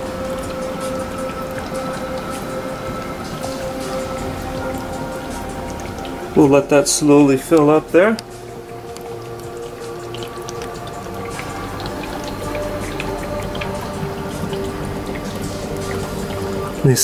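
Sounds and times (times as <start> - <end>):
soft background music: 0.0 - 17.0
tiny bubbles popping: 7.4 - 16.8.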